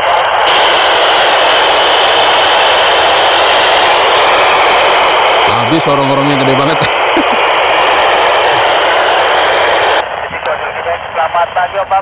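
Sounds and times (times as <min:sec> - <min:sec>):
radio static hiss: 0:00.0 - 0:12.0
faint voice over radio: 0:10.0 - 0:12.0.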